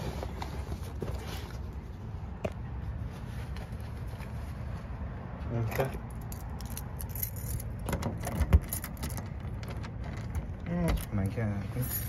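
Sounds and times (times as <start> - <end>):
keys jangling at a lock: 5.7 - 10.3.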